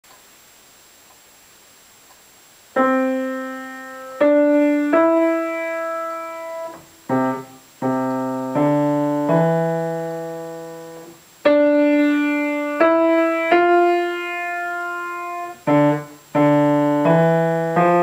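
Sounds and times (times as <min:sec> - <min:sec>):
slow piano piece: 0:02.7 - 0:18.0.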